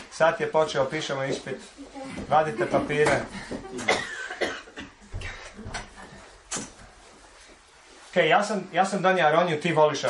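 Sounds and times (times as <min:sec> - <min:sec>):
person coughing: 0:03.7 - 0:05.0.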